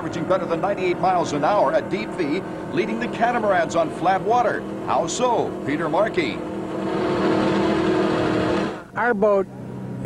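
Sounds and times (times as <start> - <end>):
boat engines running at high speed: 0.0 - 10.0.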